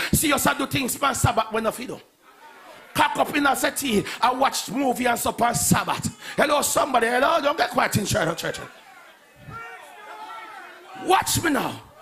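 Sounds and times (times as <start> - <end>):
congregation calling out: 0.0 - 12.0.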